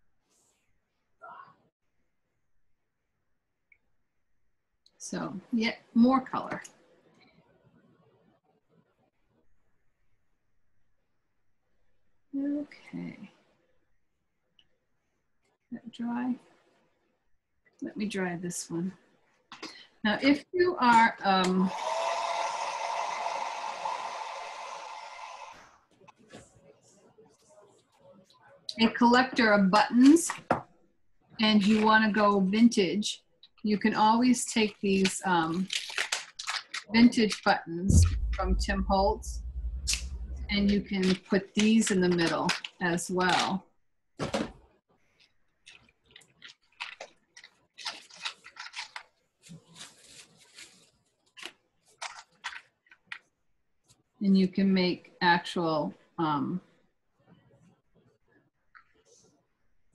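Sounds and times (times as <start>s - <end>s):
hair dryer blowing: 21.7s - 25.5s
plastic packet crinkling: 35.5s - 36.9s, 45.6s - 53.2s.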